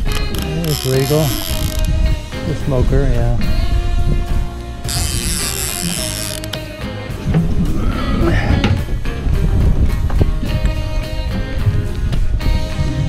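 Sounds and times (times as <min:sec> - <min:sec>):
fishing reel clicking: 0:00.0 - 0:02.3, 0:04.8 - 0:06.8
background music: 0:00.0 - 0:13.0.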